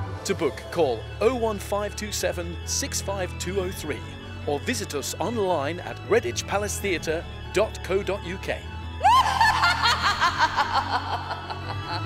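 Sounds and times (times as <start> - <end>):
woman cackling: 9.0 - 12.0.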